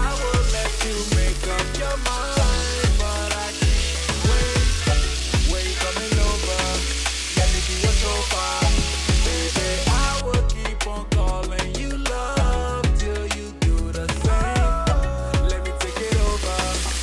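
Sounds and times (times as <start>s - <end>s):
chicken sizzling in a pan: 0.0s - 10.2s, 15.8s - 17.0s
music with deep beat: 0.0s - 17.0s.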